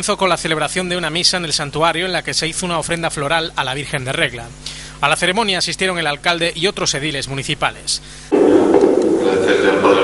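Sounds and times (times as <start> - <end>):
man speaking over public address: 0.0 - 10.0.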